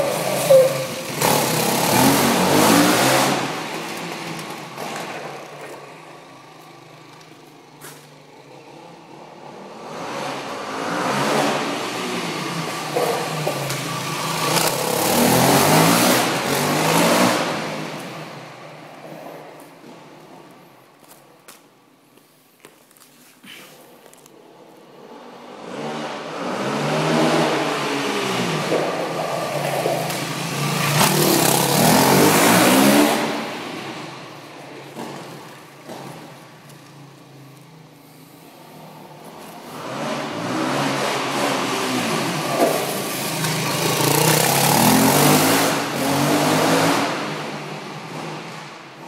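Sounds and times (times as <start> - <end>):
dirt bike engine revving: 0.0 - 3.9, 25.8 - 33.8, 39.7 - 47.4.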